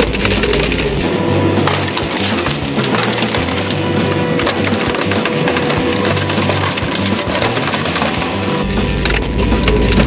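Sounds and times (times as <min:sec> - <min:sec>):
background music: 0:00.0 - 0:10.0
monitors cracking and splintering: 0:00.0 - 0:10.0.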